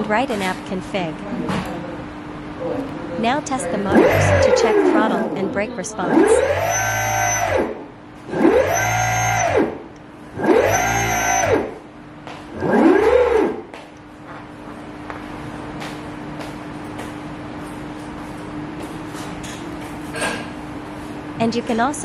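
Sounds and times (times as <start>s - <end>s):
electric motors whining: 3.2s - 11.9s, 12.5s - 13.8s.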